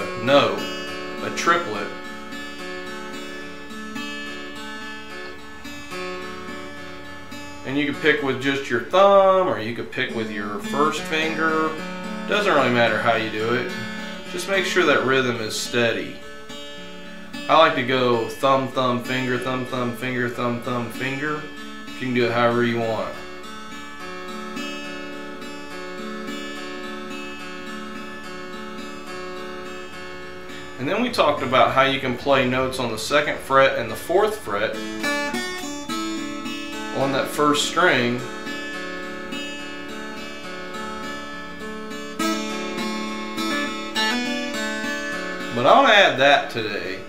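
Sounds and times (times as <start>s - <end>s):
fingerpicked acoustic guitar: 0.0s - 47.0s.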